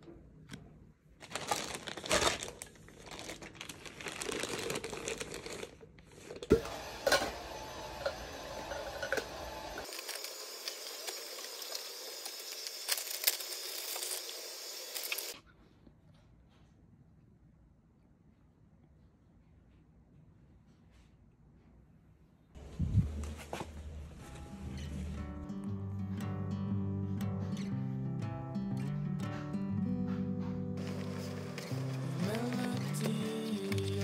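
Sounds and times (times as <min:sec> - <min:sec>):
plastic bags crinkling: 0:01.2 - 0:06.5, 0:09.8 - 0:15.4, 0:30.8 - 0:34.0.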